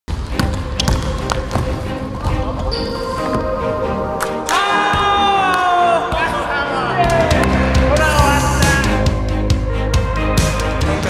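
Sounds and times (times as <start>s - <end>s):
background music: 0.1s - 11.0s.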